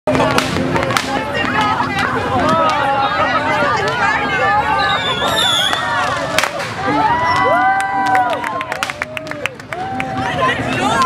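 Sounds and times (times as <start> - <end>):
fireworks cracking: 0.1 - 7.8
crowd calling and cheering: 0.1 - 11.0.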